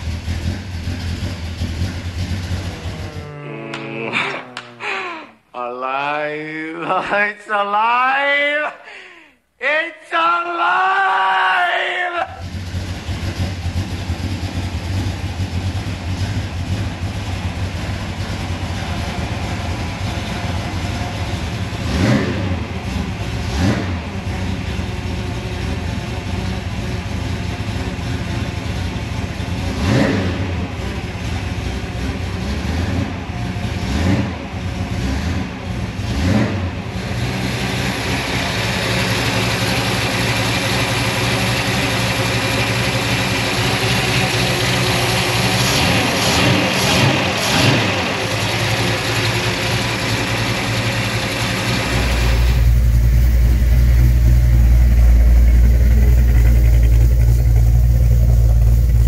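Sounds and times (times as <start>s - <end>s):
engine running with revving blips: 0.0s - 4.8s, 12.4s - 59.0s.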